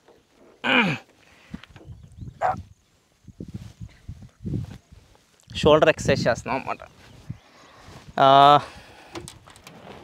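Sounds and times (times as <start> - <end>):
short animal call: 2.4 - 2.7.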